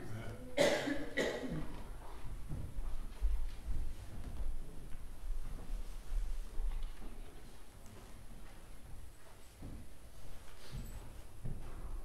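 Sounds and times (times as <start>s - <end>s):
person coughing: 0.6s - 1.8s.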